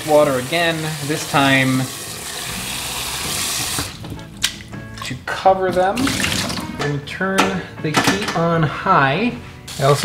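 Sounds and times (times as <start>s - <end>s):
tap water running into pot: 0.0s - 5.2s, 5.8s - 6.7s.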